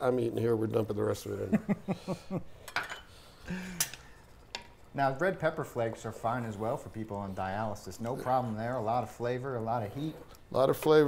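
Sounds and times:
utensil clinking against dish: 0:02.6 - 0:04.9.

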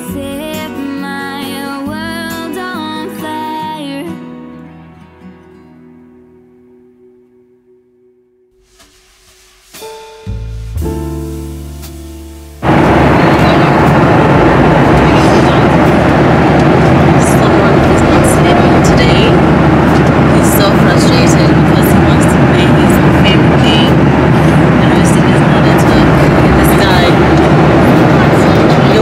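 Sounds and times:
airliner cabin roar: 0:12.6 - 0:29.0.

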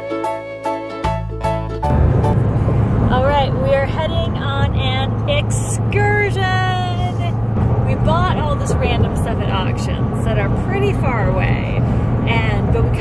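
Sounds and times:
car road and engine noise: 0:00.0 - 0:13.0
woman speaking: 0:03.1 - 0:07.3, 0:07.9 - 0:13.0.

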